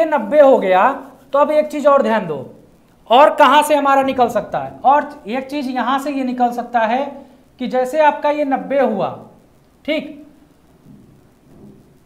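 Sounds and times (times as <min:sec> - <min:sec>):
man speaking: 0:00.0 - 0:09.2.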